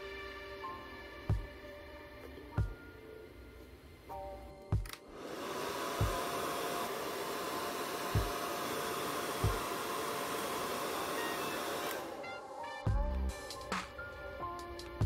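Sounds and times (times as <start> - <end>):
background music with soft beat: 0.0 - 15.0
hair dryer blowing: 5.1 - 12.9.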